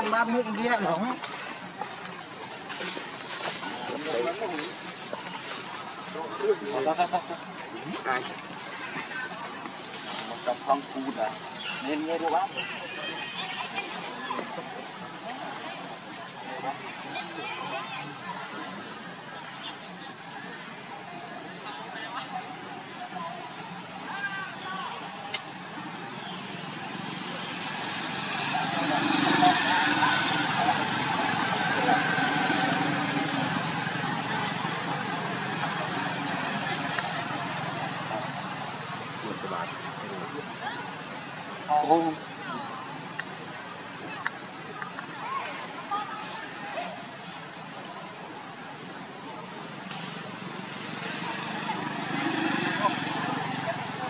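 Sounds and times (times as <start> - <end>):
engine-like noise: 22.3 - 54.0
passing vehicle: 25.6 - 44.6, 46.8 - 54.0.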